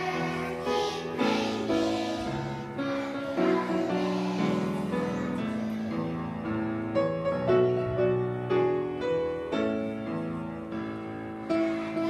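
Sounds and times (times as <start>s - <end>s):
slow piano tune: 0.0s - 12.0s.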